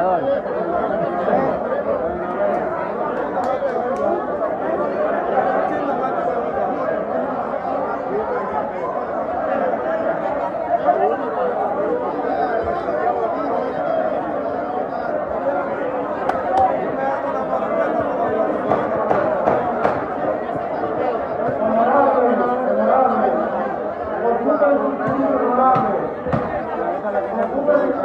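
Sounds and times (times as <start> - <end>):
crowd chatter in reverberant hall: 0.0 - 28.0.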